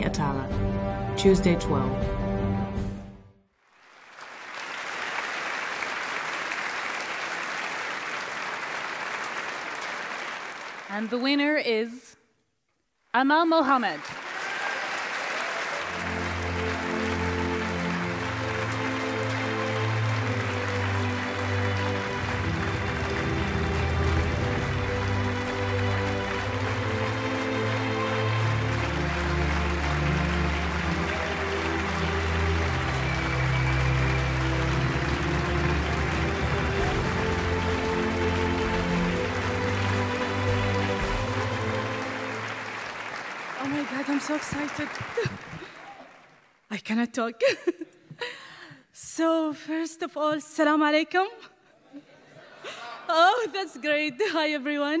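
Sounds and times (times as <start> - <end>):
audience applauding: 3.6 - 11.6, 13.8 - 46.7.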